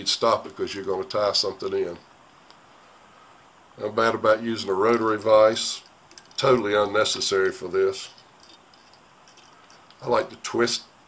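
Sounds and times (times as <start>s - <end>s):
small ticks and rustles of yarn: 7.3s - 10.2s.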